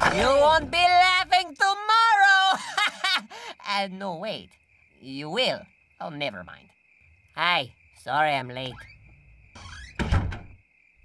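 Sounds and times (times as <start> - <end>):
door sliding or creaking: 8.6 - 10.6
door shutting thud: 9.6 - 10.6.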